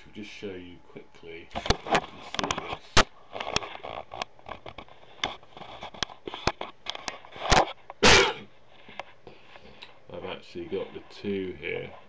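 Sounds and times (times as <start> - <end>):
sneeze-like burst of breath: 8.0 - 8.5.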